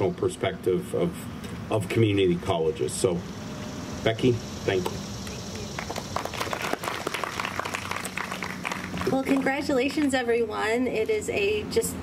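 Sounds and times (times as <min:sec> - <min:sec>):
audience applauding: 0:05.8 - 0:09.6.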